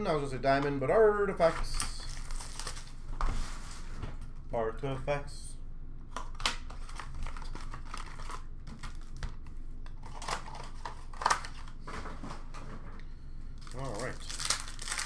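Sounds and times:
plastic wrapping crinkling and tearing: 1.6 - 3.0, 6.7 - 9.4, 10.0 - 11.8, 13.6 - 15.0.

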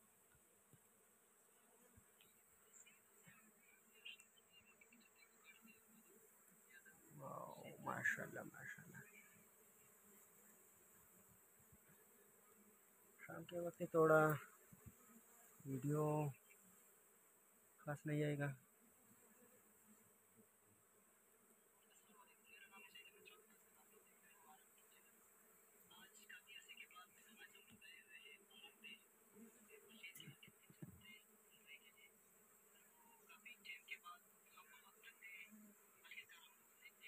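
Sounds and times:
bees buzzing faintly: 0.0 - 37.0
man's voice: 7.2 - 9.0.

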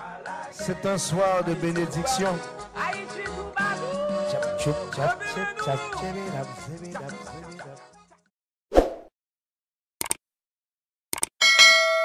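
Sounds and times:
notification bell ding: 11.4 - 12.0.

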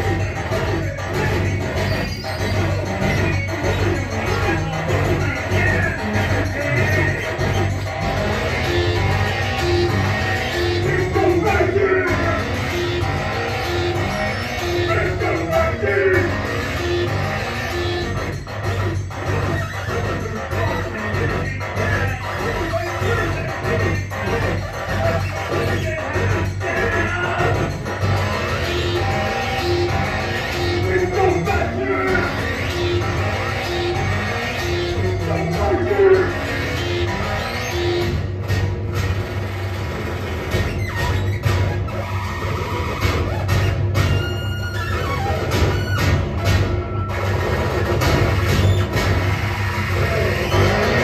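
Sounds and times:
electronic synthesizers: 0.0 - 51.0
heavy steady bass: 0.0 - 51.0.

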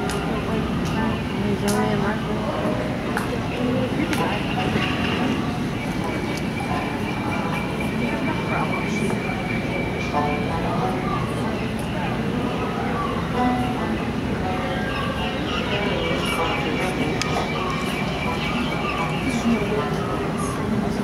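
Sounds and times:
boat ride rumbling and rushing: 0.0 - 21.0
faint music: 0.0 - 21.0
indistinct voices: 0.0 - 21.0.

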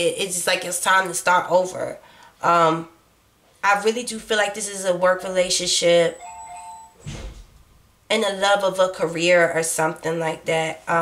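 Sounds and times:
short breath: 2.0 - 2.4
two-note electronic chime: 6.2 - 7.0.

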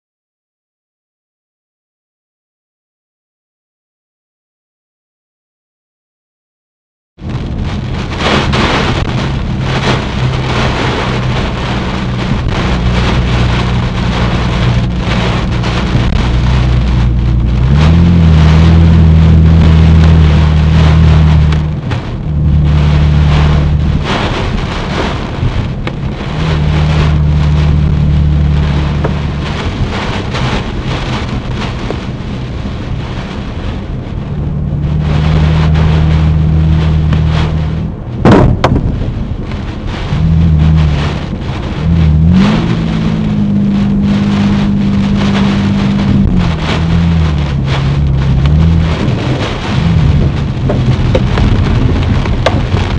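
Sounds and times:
deep low rumble: 7.2 - 52.9
heavy rain hitting a car: 7.2 - 52.9
storm wind battering a car: 7.2 - 52.9.

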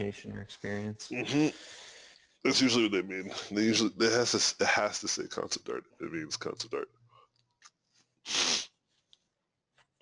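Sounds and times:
short loud burst of breath: 8.3 - 8.7.

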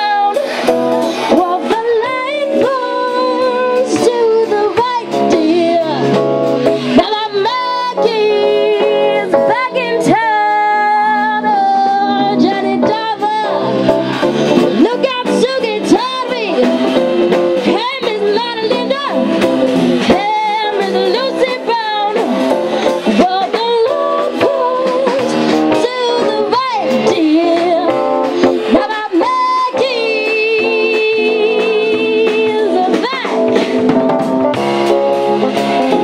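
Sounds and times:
woman singing: 0.0 - 0.6, 1.3 - 14.0, 14.6 - 17.0, 17.6 - 34.4
drums: 0.0 - 36.0
guitar: 0.0 - 36.0.

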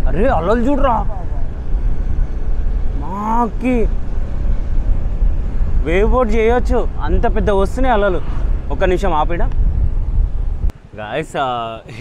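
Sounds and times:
wind rumble: 0.0 - 12.0.

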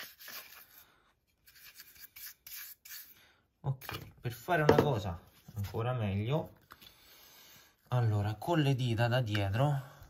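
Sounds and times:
paintbrush scrubbing metal: 0.0 - 3.2.

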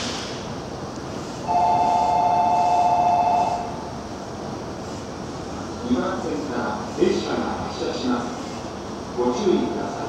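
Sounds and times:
station background hum: 0.0 - 10.0.

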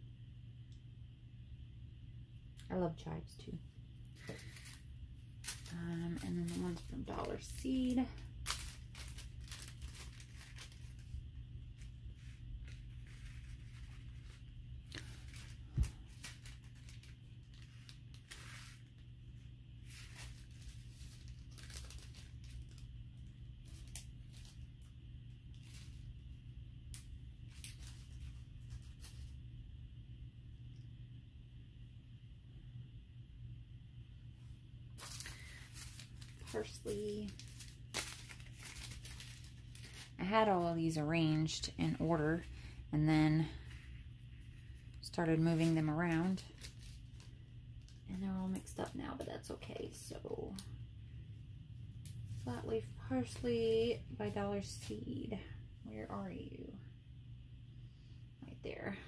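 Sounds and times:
steady low hum: 0.0 - 59.0
seed packet crinkling: 4.2 - 29.4, 35.0 - 50.7.

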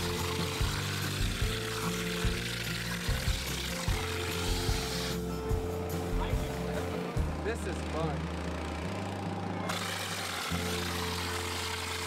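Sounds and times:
compressed-air sprayer hissing: 0.0 - 5.3
background music with low bass: 0.0 - 12.0.

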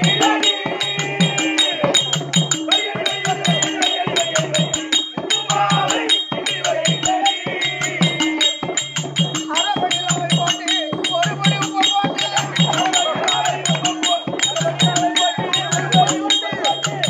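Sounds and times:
small hand cymbals ringing: 0.0 - 17.0.

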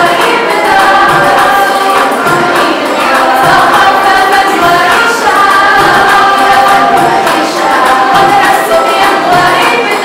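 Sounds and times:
backing music: 0.0 - 10.0
choir singing: 0.0 - 10.0.

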